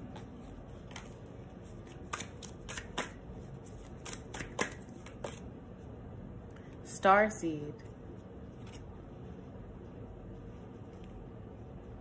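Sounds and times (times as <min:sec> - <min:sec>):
cards being shuffled: 0:00.0 - 0:05.5, 0:08.5 - 0:08.9.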